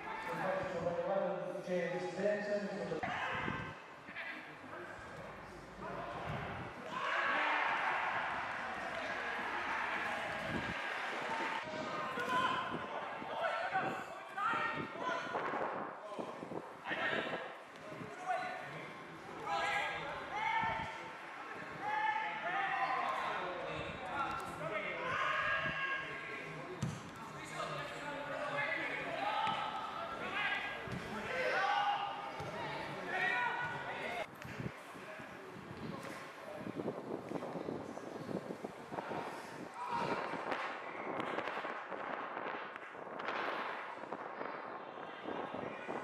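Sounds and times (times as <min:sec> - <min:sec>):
players shouting: 0:05.7 - 0:15.0, 0:27.4 - 0:34.3
ball being kicked: 0:26.8 - 0:27.2.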